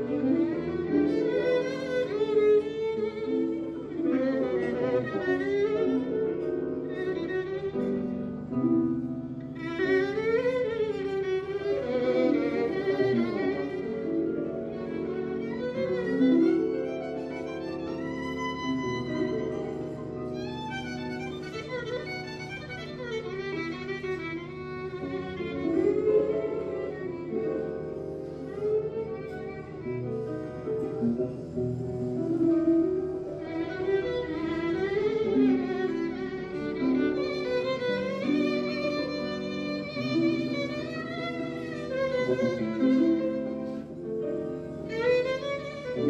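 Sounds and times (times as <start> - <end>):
cimbalom accompaniment: 0.0 - 46.0
violin melody with vibrato: 0.0 - 46.0.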